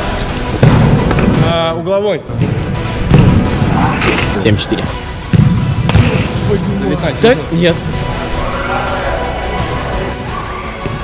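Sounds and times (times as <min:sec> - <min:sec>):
background music: 0:00.0 - 0:11.0
football kick thud: 0:05.3 - 0:06.4.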